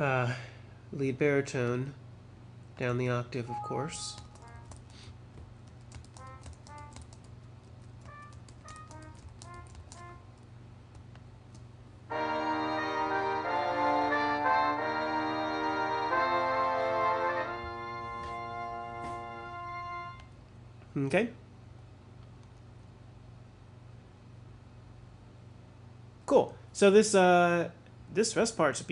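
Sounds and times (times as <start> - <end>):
computer clicks: 4.1 - 4.9, 5.7 - 7.3
sustained brass chords: 12.1 - 20.2.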